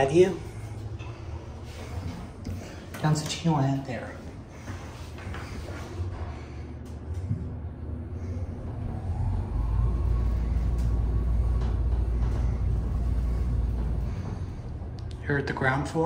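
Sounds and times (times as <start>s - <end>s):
faint rising whine: 0.0s - 3.0s, 4.0s - 16.0s
elevator car rumble: 0.0s - 16.0s.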